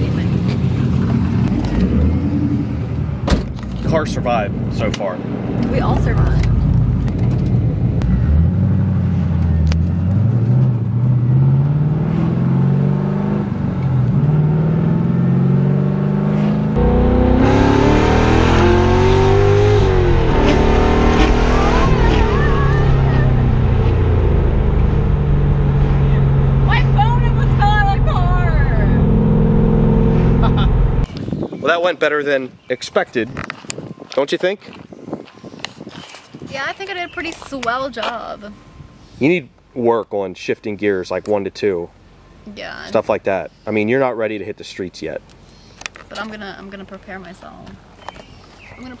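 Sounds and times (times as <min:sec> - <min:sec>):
car engine accelerating: 0:00.0 - 0:03.2, 0:04.0 - 0:31.1
wind noise: 0:29.9 - 0:31.9, 0:32.5 - 0:37.5.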